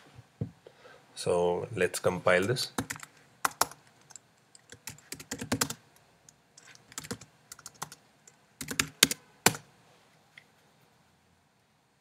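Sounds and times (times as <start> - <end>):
computer keyboard keys clicking: 2.8 - 5.8, 6.6 - 8.0, 8.6 - 9.6.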